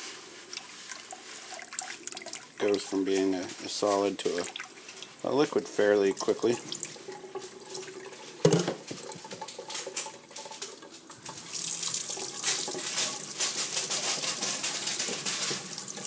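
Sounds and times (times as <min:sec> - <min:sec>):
tap running into metal sink: 0:08.4 - 0:16.0.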